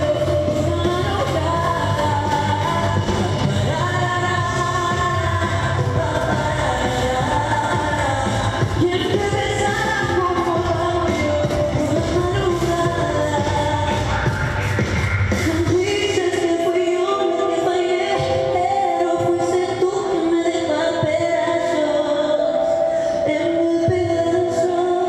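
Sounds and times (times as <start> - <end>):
woman singing into microphone: 0.0 - 14.6, 15.4 - 25.0
pop backing track: 0.0 - 25.0.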